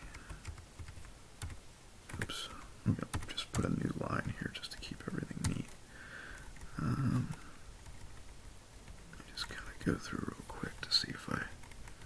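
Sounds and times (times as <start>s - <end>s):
man muttering: 6.7s - 7.5s.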